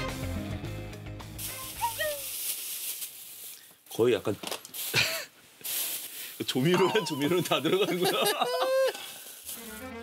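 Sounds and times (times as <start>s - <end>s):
background music: 0.0s - 1.9s, 6.8s - 10.0s
steady hiss: 1.2s - 10.0s.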